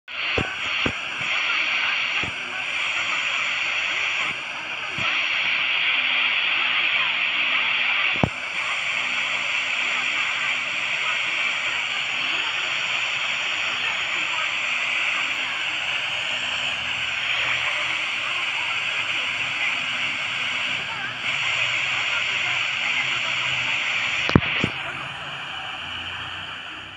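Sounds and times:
radio static hiss: 0.0 - 26.9
weak broadcast voice: 0.0 - 26.9.

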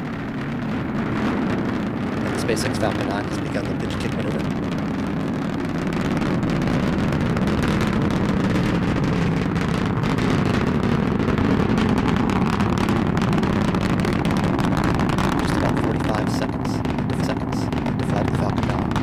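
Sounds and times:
rocket engines rumbling: 0.0 - 19.0.

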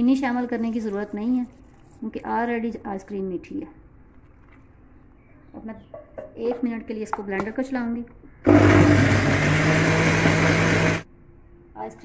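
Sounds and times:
woman speaking: 0.0 - 3.8, 5.6 - 8.1.

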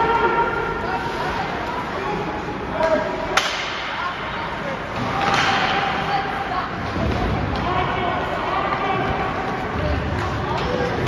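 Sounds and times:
distant voices in arena: 0.0 - 11.0
hockey puck crack: 2.8 - 3.9, 4.9 - 6.1.

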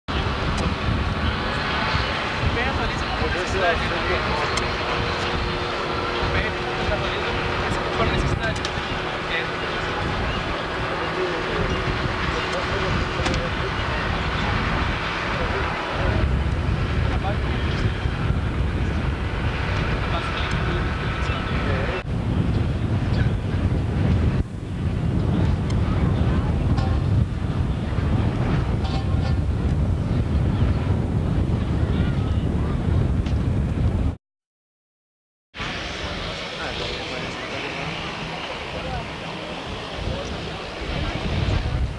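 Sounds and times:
engines running: 0.1 - 32.8, 35.6 - 41.9
indistinct voices: 35.6 - 41.9.

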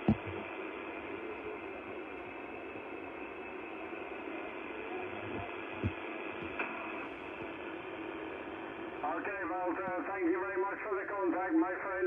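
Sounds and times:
radio receiver hiss: 0.0 - 10.1.

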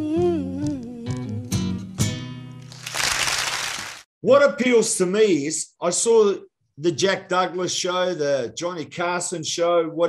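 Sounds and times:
audience applause: 2.7 - 4.0.

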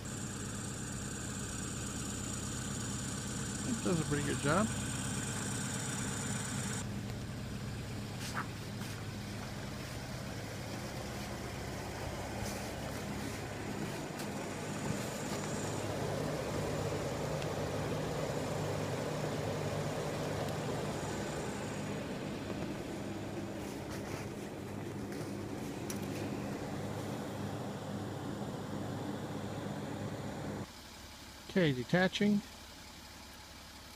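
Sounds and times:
car engine idling: 0.0 - 33.9.

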